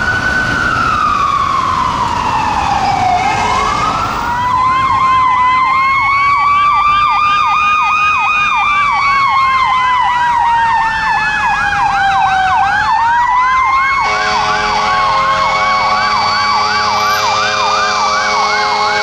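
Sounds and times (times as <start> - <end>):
siren fast yelp: 0.0 - 19.0
siren slow wail: 0.0 - 19.0.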